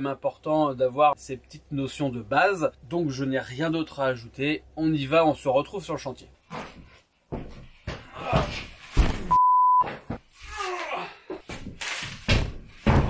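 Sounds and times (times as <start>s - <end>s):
censor bleep: 9.3s - 9.9s.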